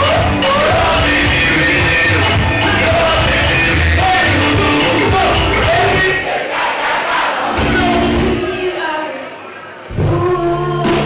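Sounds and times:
backing track with heavy bass beat: 0.0 - 6.2, 7.5 - 8.5
person singing into a microphone: 0.0 - 6.2, 9.9 - 11.0.

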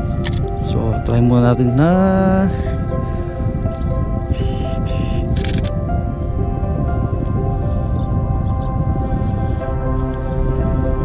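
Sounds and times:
background music with held notes: 0.0 - 11.0
camera shutter clicks: 0.2 - 0.5, 5.4 - 5.8.

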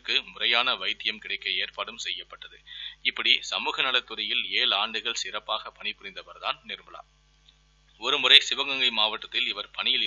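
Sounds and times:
faint electrical hum: 0.0 - 10.0
narrator speaking: 8.0 - 10.0.

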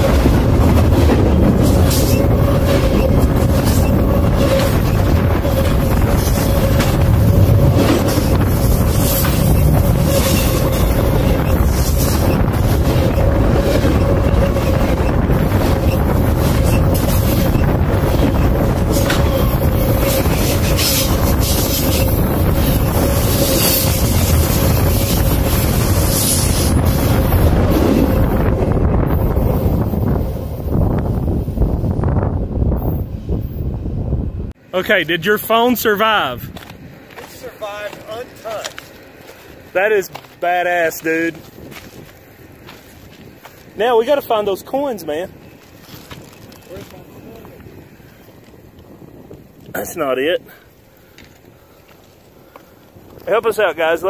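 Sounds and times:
train wheels rumbling and clattering: 0.0 - 34.6, 36.4 - 49.9
air buffeting microphone: 0.0 - 34.7.

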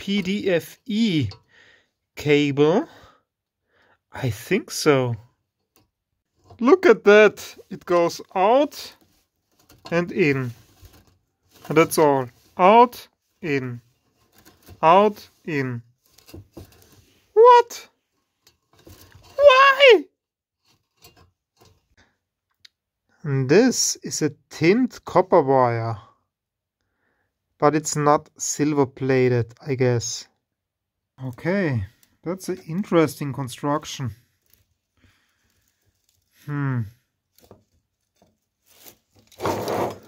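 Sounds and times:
man's wordless exclamation: 0.0 - 1.4, 2.2 - 3.2, 4.1 - 5.2, 6.6 - 9.0, 9.9 - 10.6, 11.6 - 13.8, 14.8 - 15.9, 17.3 - 17.9, 19.3 - 20.1, 23.2 - 26.1, 31.2 - 34.2, 36.3 - 37.0.

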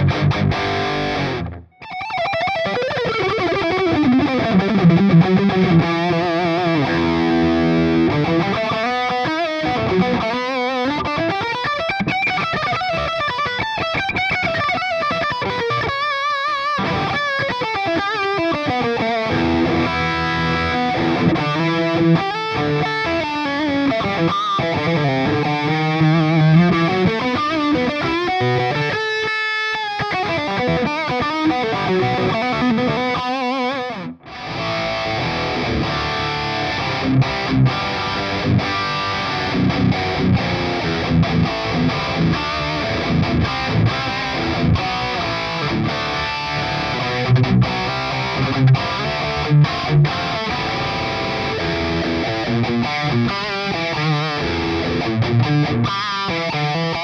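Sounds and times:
electric guitar lead line: 0.0 - 57.0
electric guitar riffing: 0.0 - 57.0.

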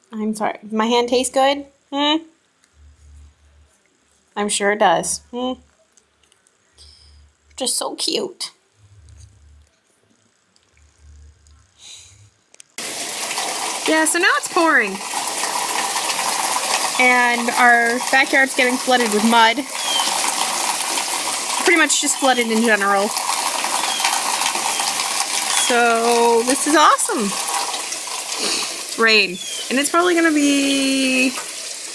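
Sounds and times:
heavy pouring rain: 12.8 - 31.9.

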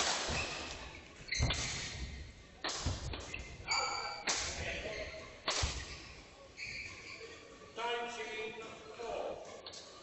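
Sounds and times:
rackets hitting shuttlecock: 1.3 - 3.5.

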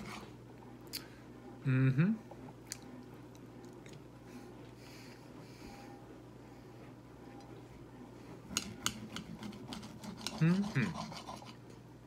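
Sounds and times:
faint chewing: 2.6 - 4.1.

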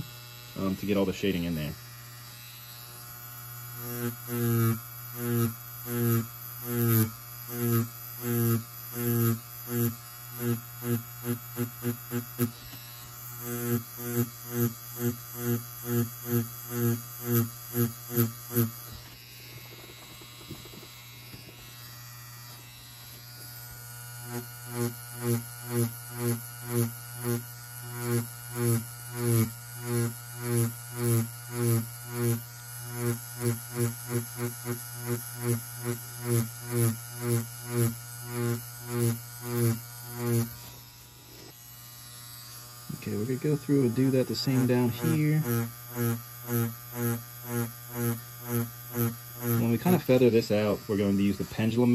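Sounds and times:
tattoo machine buzzing: 0.0 - 51.9.

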